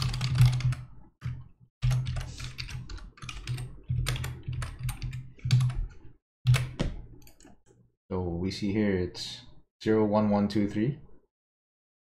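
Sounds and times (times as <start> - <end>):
typing on computer keyboard: 0.0 - 7.5.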